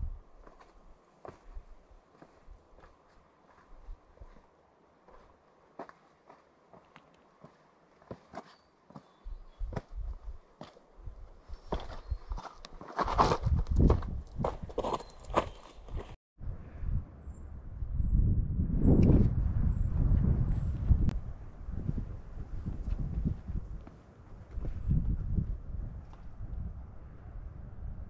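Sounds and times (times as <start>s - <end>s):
wind rumble on microphone: 0.0s - 0.6s, 9.3s - 10.4s, 13.1s - 28.0s
boot footsteps crunching on rock: 11.5s - 16.2s.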